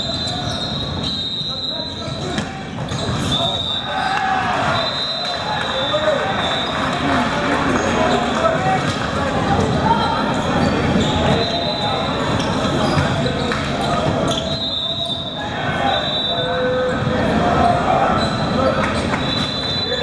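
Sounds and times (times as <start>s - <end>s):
sneaker squeaks: 0.0s - 6.9s, 9.5s - 17.1s, 18.1s - 20.0s
players calling out and talking: 0.0s - 20.0s
ball bouncing on court: 2.3s - 3.3s.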